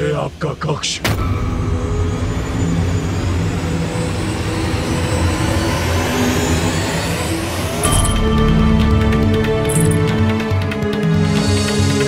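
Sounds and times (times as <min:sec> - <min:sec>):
low rumbling drone: 0:01.1 - 0:10.4.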